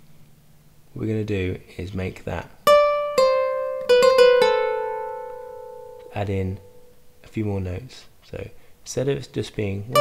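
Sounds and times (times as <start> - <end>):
harp notes plucked: 2.7 - 7.1.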